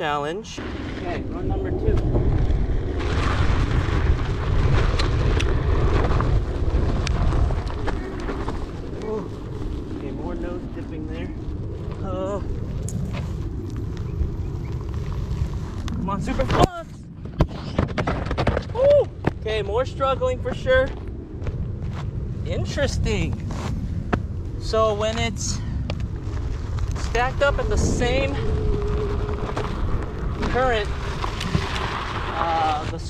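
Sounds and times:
tyre rumbling on rough ground: 0:00.6 - 0:19.8, 0:25.1 - 0:33.0
footsteps on dirt: 0:02.0 - 0:10.1, 0:20.8 - 0:22.3, 0:25.8 - 0:27.8, 0:28.4 - 0:32.4.

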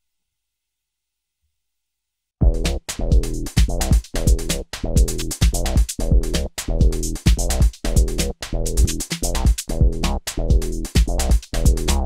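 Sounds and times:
drum machine kick: 0:02.4 - 0:12.0
electronic house music: 0:02.4 - 0:12.0.

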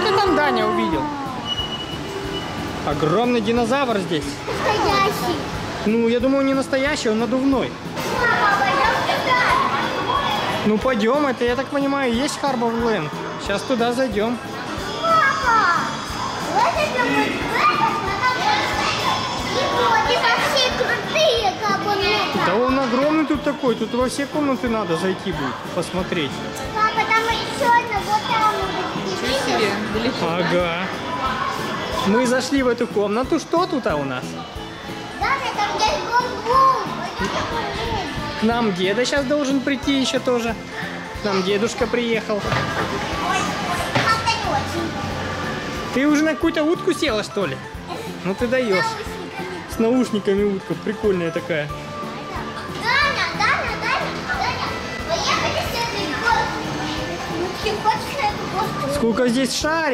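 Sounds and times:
background music: 0:00.0 - 0:59.9
children playing: 0:00.0 - 0:59.9
young child talking: 0:04.5 - 0:05.5, 0:16.5 - 0:22.4, 0:26.7 - 0:29.8, 0:35.2 - 0:38.2, 0:43.2 - 0:45.0, 0:52.3 - 0:56.6.

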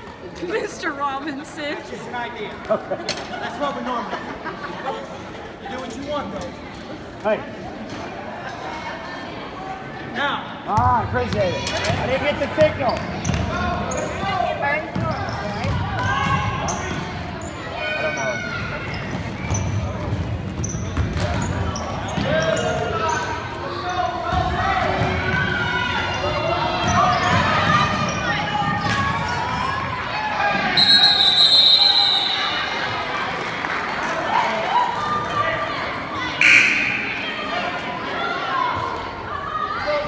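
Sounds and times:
referee whistle blowing: 0:30.8 - 0:32.6, 0:36.4 - 0:37.7
voices calling out: 0:36.4 - 0:39.4.

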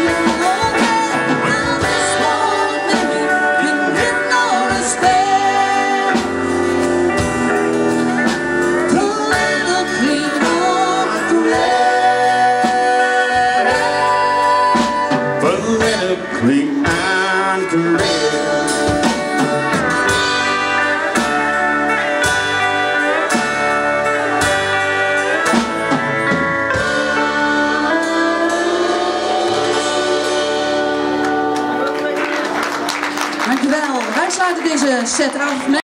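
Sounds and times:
pedal steel guitar bending notes: 0:00.0 - 0:33.4
live country band playing: 0:00.0 - 0:35.8.

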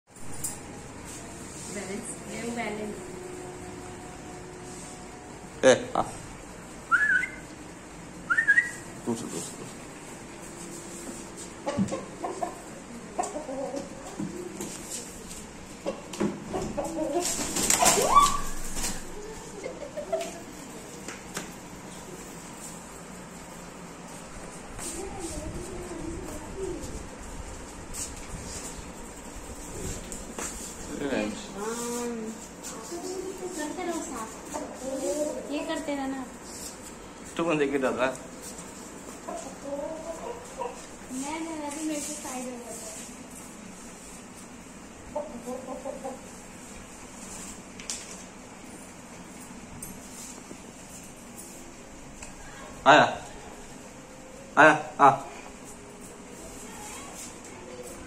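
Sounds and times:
chicken clucking: 0:11.5 - 0:14.6, 0:15.8 - 0:17.9, 0:19.2 - 0:20.6, 0:39.2 - 0:41.0, 0:45.1 - 0:46.4.

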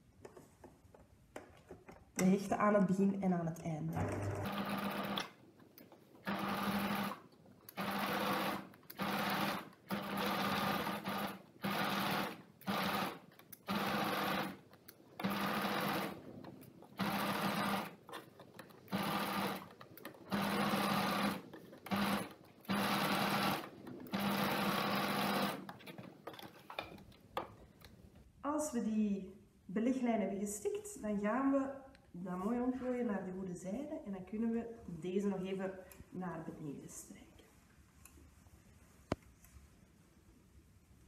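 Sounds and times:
electric sewing machine stitching: 0:04.0 - 0:05.4, 0:06.2 - 0:14.6, 0:15.2 - 0:26.0.

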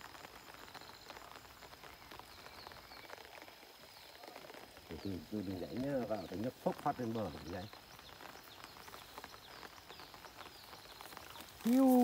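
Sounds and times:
light rain pattering: 0:00.0 - 0:12.0.

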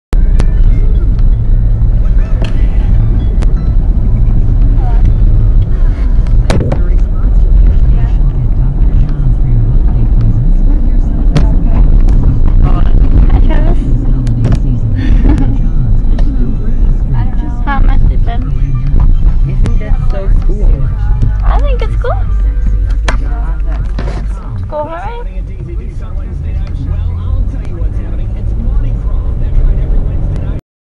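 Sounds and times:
car driving rumble: 0:00.1 - 0:30.6.

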